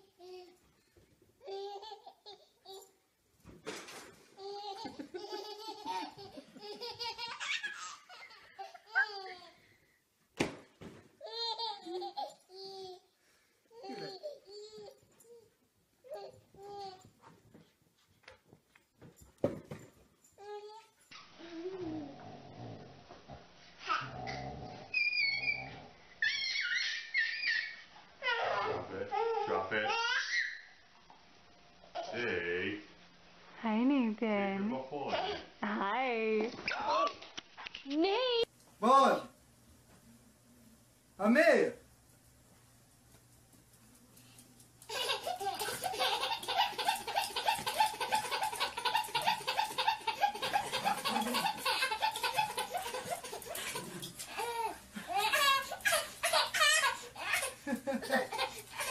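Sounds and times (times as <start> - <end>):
baby squealing: 24.9 - 30.7
baby belly-laughing: 44.9 - 58.9.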